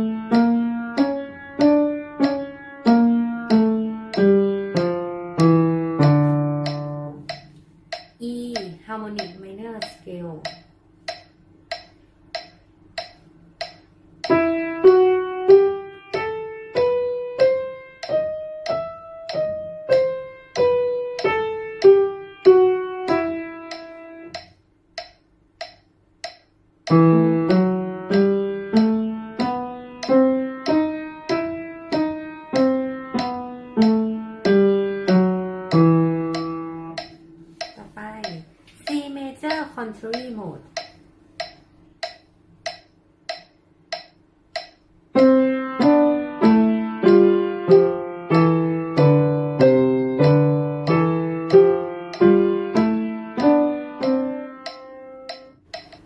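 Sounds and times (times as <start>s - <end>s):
upright piano rising scale: 0.0s - 7.5s, 14.2s - 24.4s, 26.9s - 37.6s, 45.1s - 55.5s
metronome ticking: 0.0s - 56.0s
person speaking: 8.2s - 10.7s, 37.5s - 40.9s.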